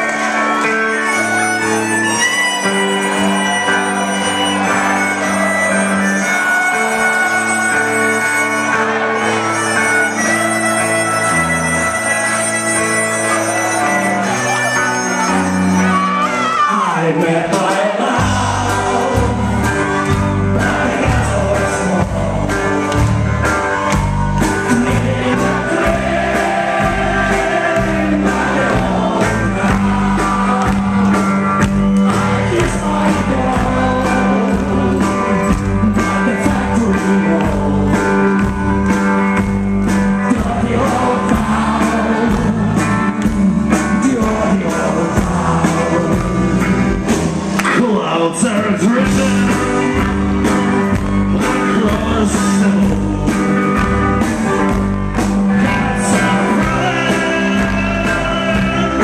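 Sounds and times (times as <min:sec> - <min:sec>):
electric guitar: 0:00.0 - 0:59.0
live rock band playing: 0:00.0 - 0:59.0
person singing: 0:12.8 - 0:23.7, 0:24.4 - 0:39.0, 0:40.1 - 0:47.1, 0:47.7 - 0:54.6, 0:55.6 - 0:59.0
drum beats: 0:17.5 - 0:59.0.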